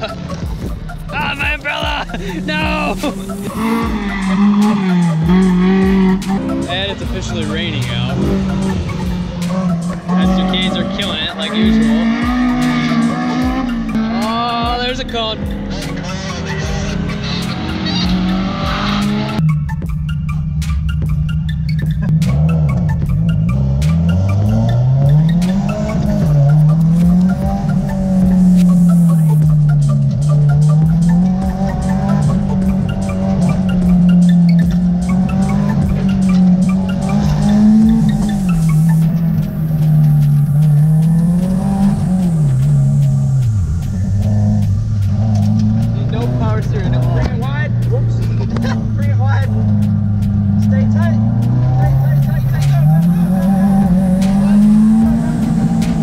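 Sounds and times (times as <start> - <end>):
car engine revving: 0.0 - 56.0
tyres squealing: 2.4 - 8.7, 30.8 - 56.0.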